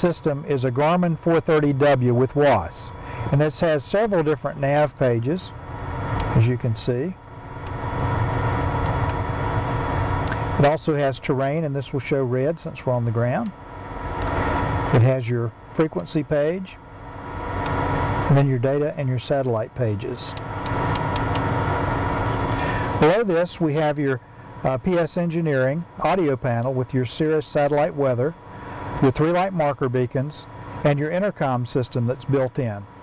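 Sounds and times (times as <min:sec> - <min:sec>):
aircraft cockpit machine hum: 0:00.0 - 0:33.0.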